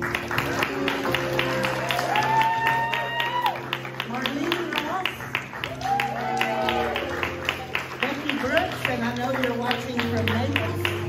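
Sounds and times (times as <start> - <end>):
congregation clapping: 0.0 - 11.0
soft keyboard music: 0.0 - 11.0.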